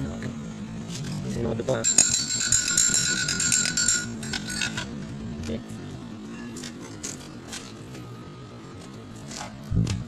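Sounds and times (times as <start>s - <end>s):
steel pipe ringing like a bell: 1.8s - 4.9s.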